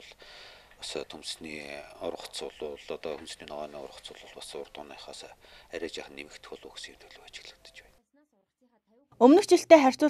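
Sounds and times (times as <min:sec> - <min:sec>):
man speaking quietly: 0:00.8 - 0:07.9.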